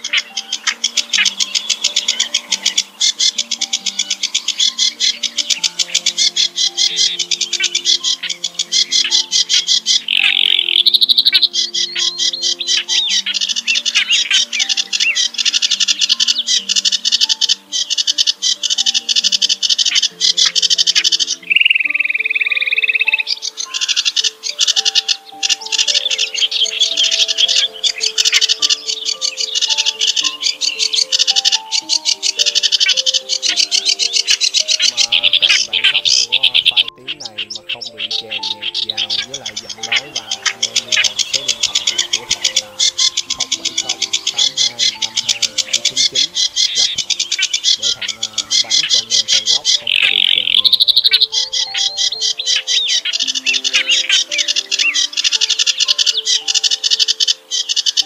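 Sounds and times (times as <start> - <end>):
reed warbler song: 0.0 - 58.0
soft background music: 0.0 - 58.0.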